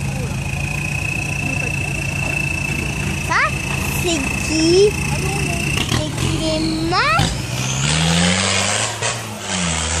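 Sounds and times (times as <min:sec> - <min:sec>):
vehicle engine pulling uphill: 0:00.0 - 0:10.0.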